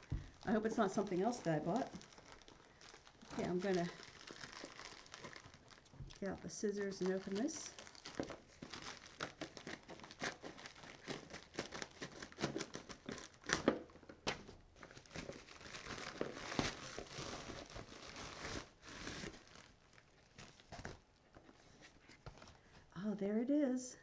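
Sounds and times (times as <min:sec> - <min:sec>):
packaging crinkling and tearing: 0:00.0 - 0:21.4.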